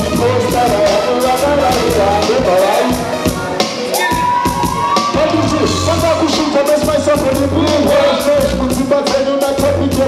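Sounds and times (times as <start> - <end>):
live band music: 0.0 - 10.0.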